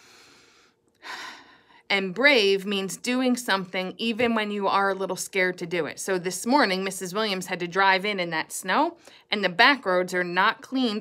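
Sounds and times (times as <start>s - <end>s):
woman breathing deeply: 0.0s - 1.9s.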